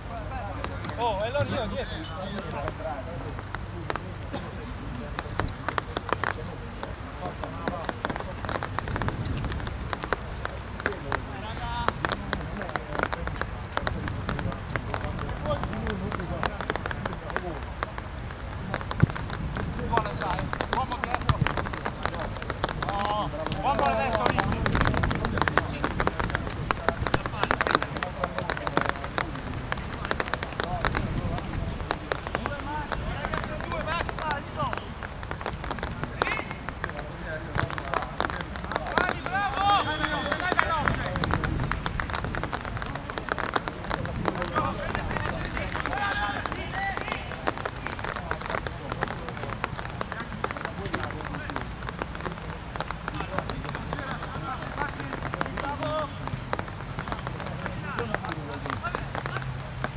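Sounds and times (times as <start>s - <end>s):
running footsteps on artificial turf: 0.1s - 59.9s
players shouting: 38.4s - 41.3s, 44.4s - 47.6s.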